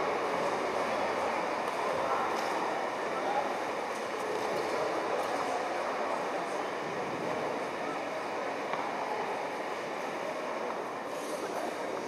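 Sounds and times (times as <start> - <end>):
murmur of many people talking: 0.0 - 12.0.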